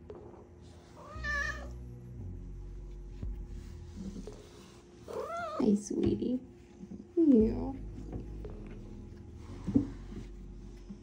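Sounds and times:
cat meowing: 1.0s - 1.8s.

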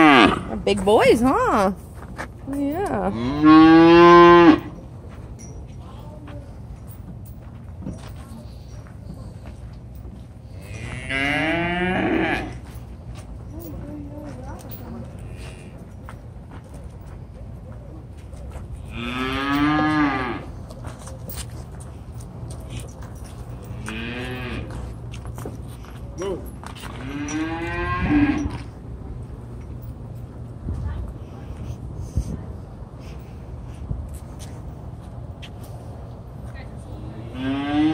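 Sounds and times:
cattle mooing: 0.0s - 0.5s, 3.1s - 4.7s, 10.7s - 12.6s, 18.9s - 20.5s, 23.8s - 24.7s, 37.2s - 37.9s.

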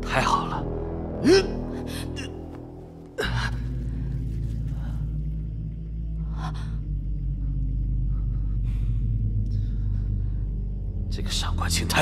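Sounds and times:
background score music: 0.0s - 12.0s.

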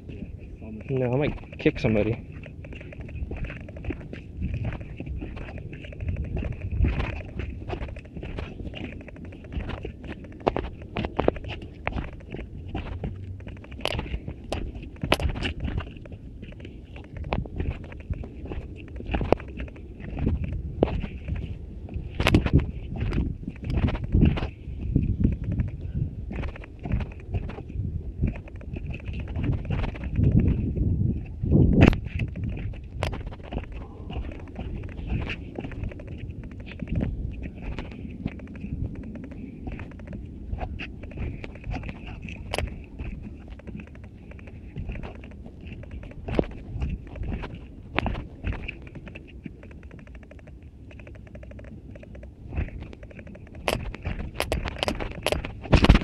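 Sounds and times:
footsteps jogging down wooden steps: 0.0s - 56.0s
camera handling knocks and rubbing: 1.0s - 30.8s, 31.7s - 56.0s.

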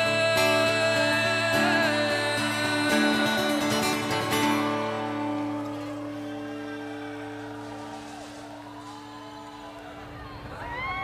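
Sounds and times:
acoustic guitar chord ringing: 0.0s - 9.3s.

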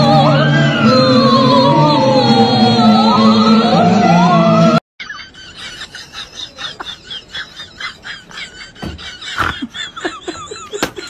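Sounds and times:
loud music with singing: 0.0s - 4.8s.

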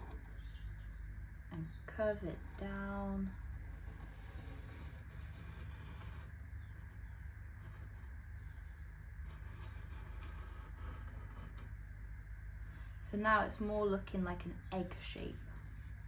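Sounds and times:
low background rumble: 0.0s - 16.0s.

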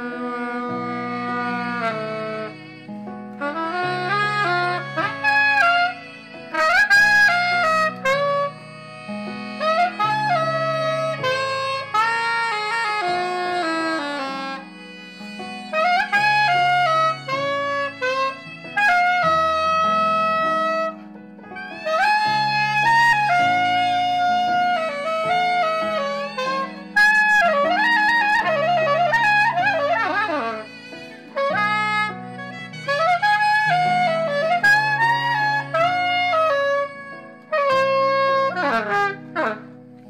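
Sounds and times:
soprano saxophone melody: 0.0s - 40.0s.

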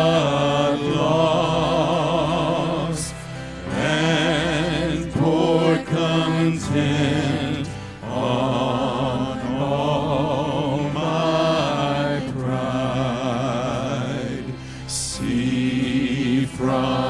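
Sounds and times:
vocal quartet singing: 0.0s - 17.0s.

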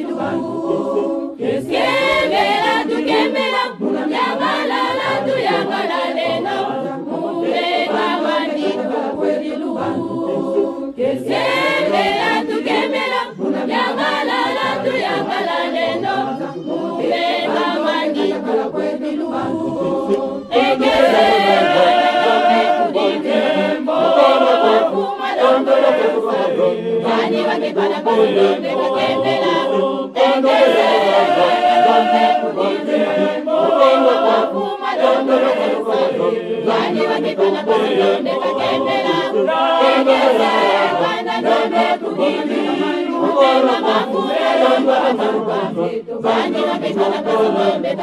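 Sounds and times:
choir singing unaccompanied: 0.0s - 48.0s.

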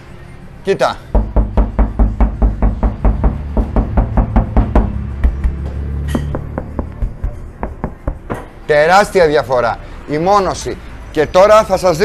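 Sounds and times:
knuckles rapping on metal panels: 1.2s - 8.6s.

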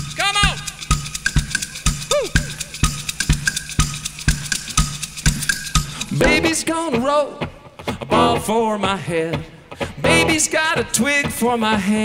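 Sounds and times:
bass drum and snare beat: 0.0s - 7.1s
vocal whoops: 2.1s - 2.8s.

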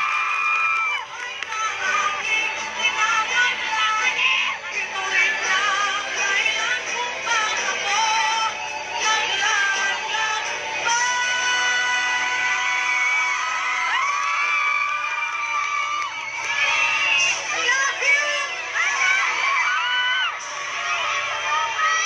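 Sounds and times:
woman singing into microphone: 1.0s - 13.1s.

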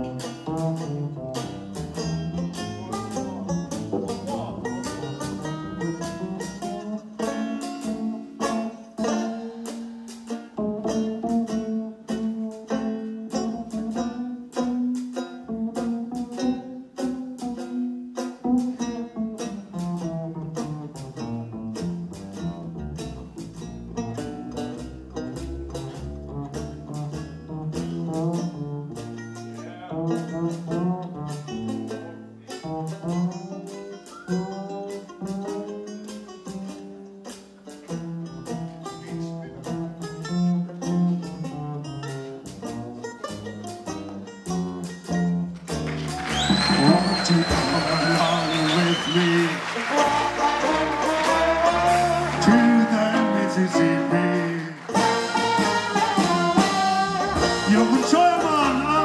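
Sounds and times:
plucked string chords: 0.0s - 47.1s, 48.8s - 59.0s
double bass walking: 0.0s - 59.0s.

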